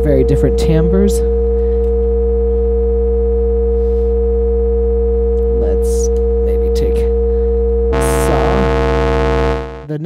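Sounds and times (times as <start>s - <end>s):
deep low hum: 0.6s - 10.0s
dense synthesizer drone: 7.2s - 10.0s.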